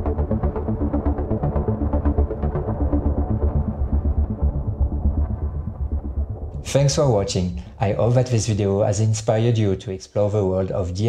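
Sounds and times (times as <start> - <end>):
looping synth sequence: 0.0 - 8.0
pulsing bass: 0.0 - 8.8.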